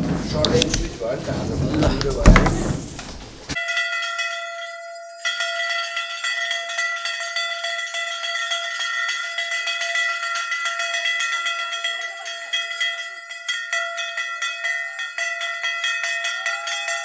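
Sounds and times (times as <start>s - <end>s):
bells ringing together: 3.6s - 17.0s.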